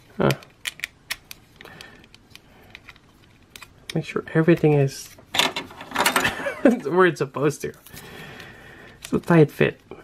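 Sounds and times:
plastic toy parts clicking: 0:00.2 - 0:04.0.

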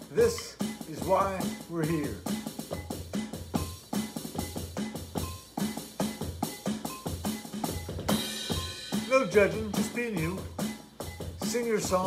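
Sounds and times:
snare and rim strikes: 0:00.0 - 0:10.8.

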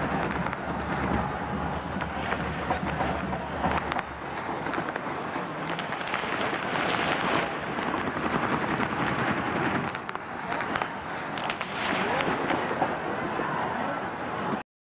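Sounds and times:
sharp cracks: 0:00.0 - 0:13.1
stadium crowd noise: 0:00.0 - 0:14.6.

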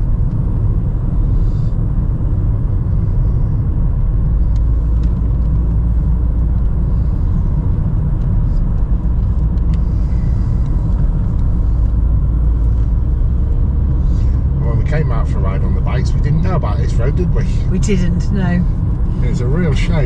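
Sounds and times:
car engine and tyre noise: 0:00.0 - 0:20.0.

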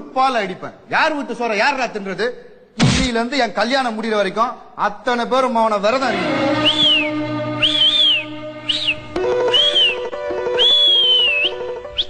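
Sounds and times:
background music: 0:05.8 - 0:12.0
shrill whistling: 0:06.3 - 0:12.0.

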